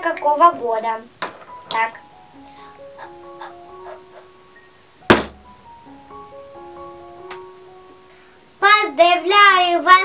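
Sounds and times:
soft background music: 0.0s - 10.0s
loud sharp thump: 5.1s - 5.5s.

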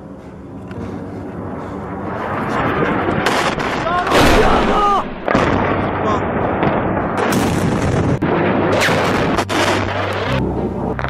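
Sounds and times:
continuous rumble: 0.0s - 4.3s
loud explosion blast: 2.1s - 11.0s
sharp cracks: 2.9s - 11.0s
people shouting: 3.8s - 5.1s.

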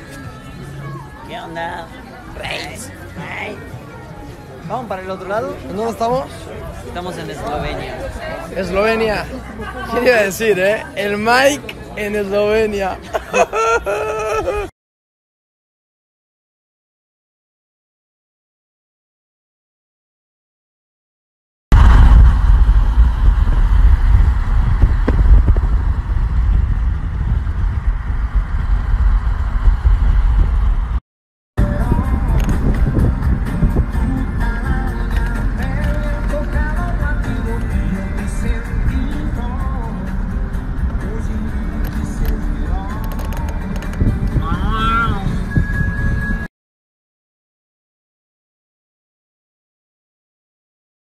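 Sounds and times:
car road and wind rumble: 21.8s - 31.0s, 31.6s - 46.5s.

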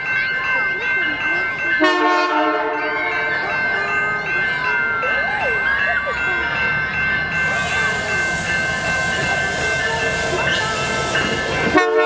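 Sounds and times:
chiming music: 0.0s - 12.0s
diesel locomotive horn blast: 1.8s - 3.3s, 9.1s - 12.0s.

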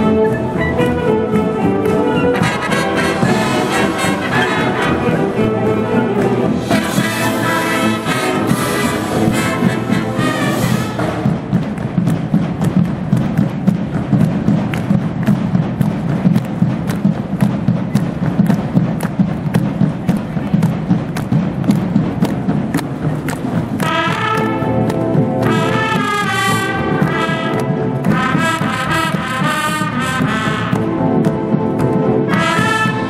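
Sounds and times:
brass section playing: 0.0s - 11.6s, 23.8s - 33.0s
marching drum beat: 0.0s - 33.0s.

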